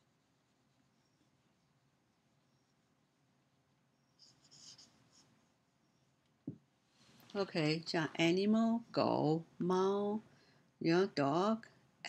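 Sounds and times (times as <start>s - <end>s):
marker squeaking on whiteboard: 3.9s - 6.3s.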